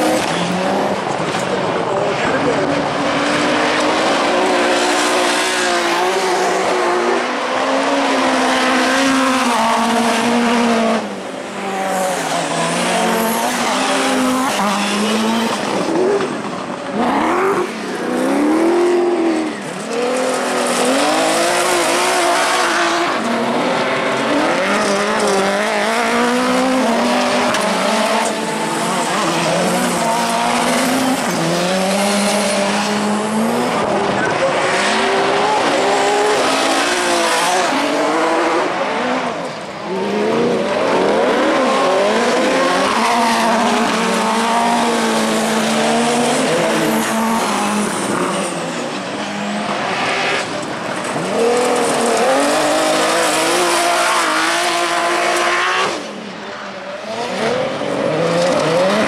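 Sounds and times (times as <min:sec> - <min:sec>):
buggy engines revving: 0:00.0 - 0:59.0.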